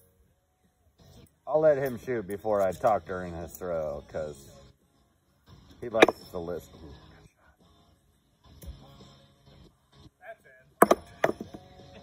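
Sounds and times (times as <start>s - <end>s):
metal washers landing on board: 6.0s - 6.3s, 10.8s - 11.6s.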